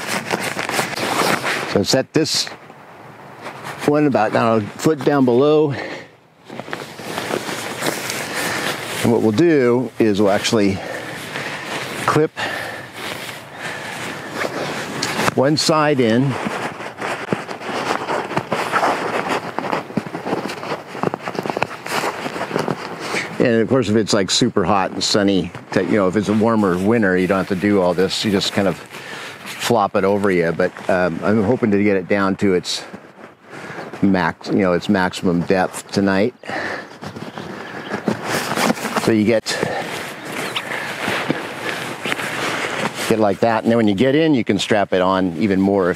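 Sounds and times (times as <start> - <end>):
nylon rustling and crinkling: 0.0 - 45.9.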